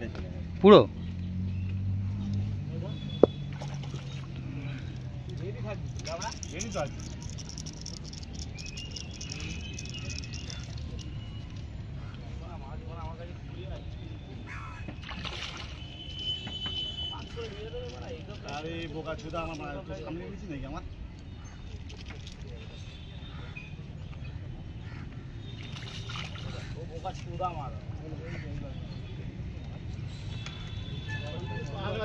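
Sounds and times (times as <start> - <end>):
water sloshing: 3.2 - 12.7, 14.8 - 19.8, 21.2 - 28.1.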